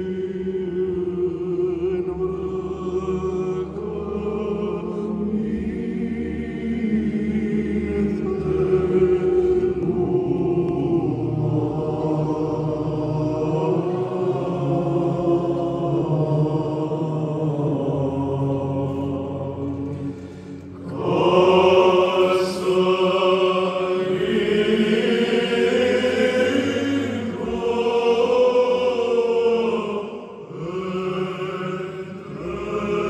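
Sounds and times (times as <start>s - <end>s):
male choir chanting: 0.0s - 33.0s.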